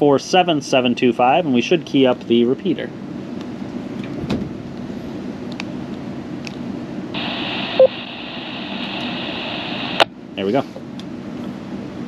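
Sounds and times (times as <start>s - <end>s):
short radio beep: 7.2s - 8.1s
radio static hiss: 7.2s - 10.6s
radio background hum: 7.2s - 10.8s.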